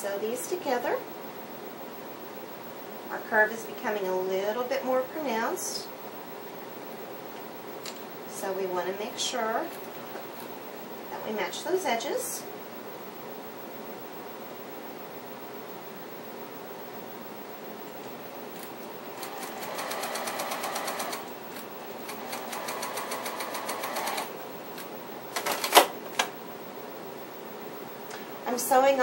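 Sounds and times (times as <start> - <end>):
sewing machine stitching: 19.2 - 21.3, 22.1 - 24.3.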